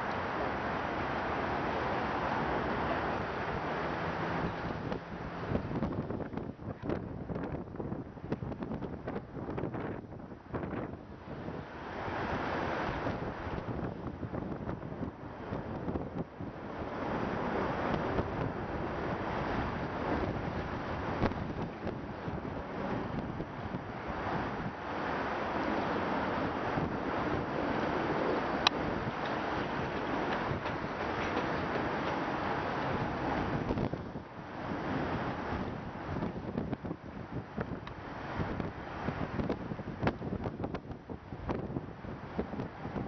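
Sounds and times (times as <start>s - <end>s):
river water washing: 0.0s - 43.0s
wind buffeting microphone: 0.0s - 43.0s.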